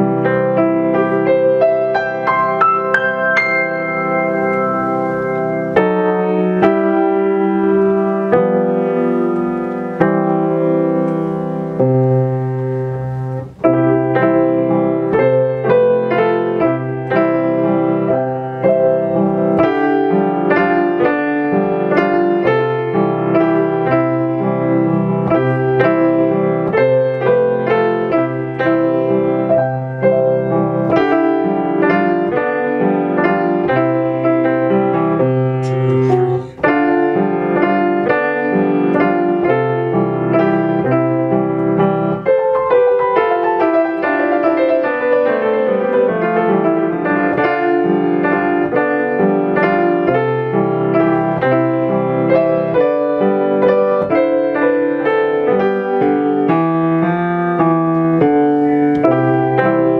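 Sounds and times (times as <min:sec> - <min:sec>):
grand piano waltz: 0:00.0 - 0:59.9.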